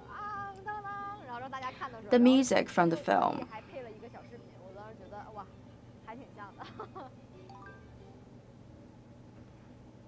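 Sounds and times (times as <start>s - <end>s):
woman singing wordless phrase: 0.0s - 1.5s
woman speaking: 0.1s - 6.7s.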